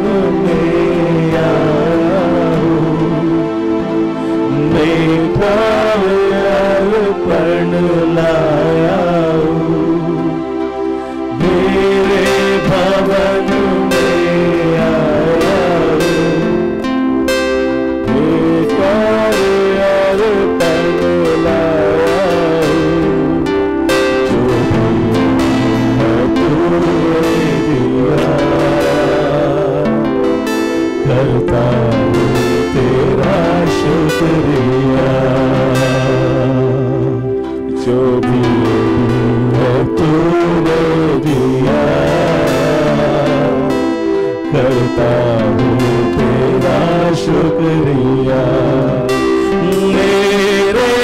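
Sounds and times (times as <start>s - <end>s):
men singing: 0.0s - 10.6s, 11.3s - 16.9s, 18.0s - 51.0s
keyboard: 0.0s - 51.0s
slow wavering melody: 0.0s - 51.0s
strummed guitar: 0.0s - 51.0s
worship band music: 0.0s - 51.0s.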